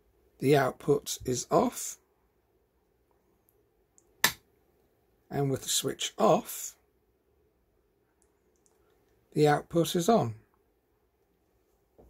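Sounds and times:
sharp click: 4.0s - 4.4s.

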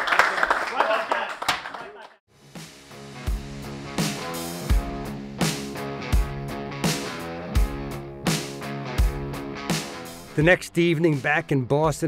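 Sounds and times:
sharp clap: 0.0s - 2.2s
background guitar music: 2.4s - 12.0s.

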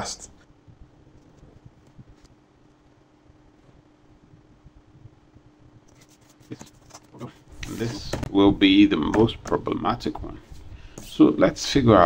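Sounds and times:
low steady hum: 0.0s - 12.0s
paper rustling: 5.9s - 8.4s.

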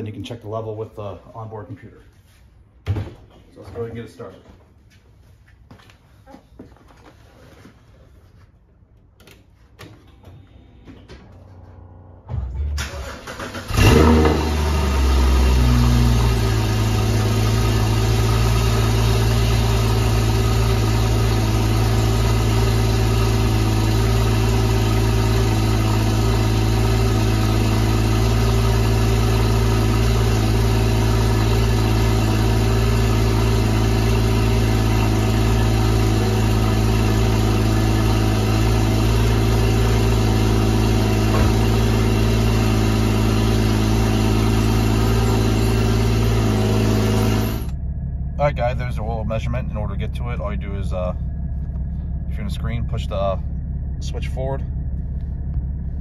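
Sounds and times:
car engine starting and idling: 10.0s - 56.0s.

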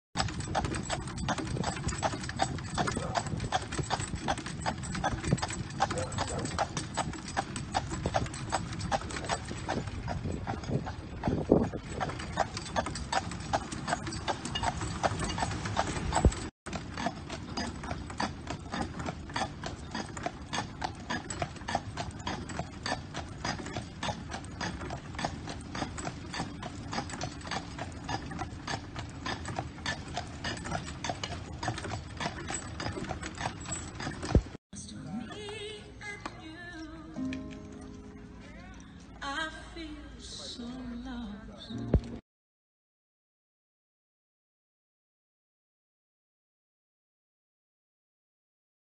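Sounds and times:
horse hooves clip-clopping on asphalt: 0.2s - 34.6s.

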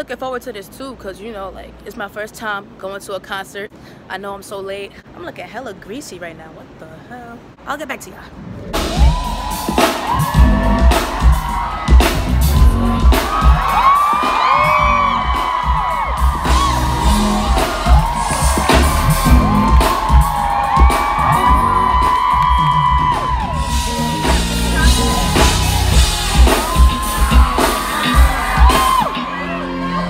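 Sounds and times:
crowd screaming and whooping: 8.7s - 30.0s
pounding kick-drum beat: 8.8s - 29.3s
live pop music over sound system: 8.8s - 30.0s.

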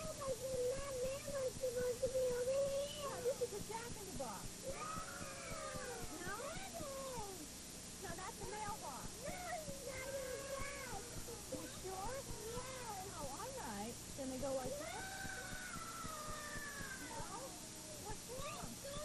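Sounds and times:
young children chattering: 0.0s - 7.5s, 8.1s - 19.0s
steady low hum: 0.0s - 19.0s.

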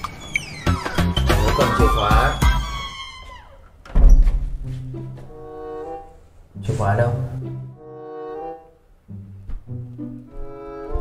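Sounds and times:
music notes: 4.5s - 11.0s.

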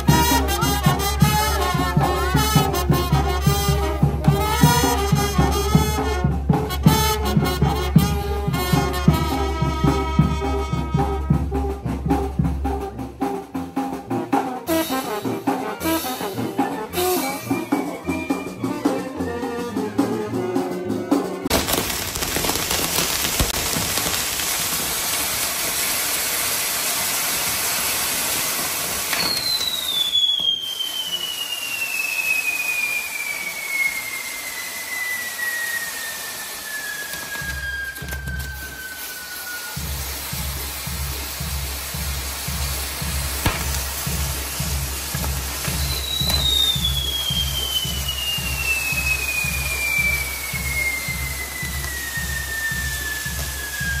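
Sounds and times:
fireworks hissing and crackling: 0.0s - 19.0s, 21.4s - 54.0s
falling whistle: 16.1s - 19.3s, 29.0s - 40.5s, 45.6s - 54.0s.

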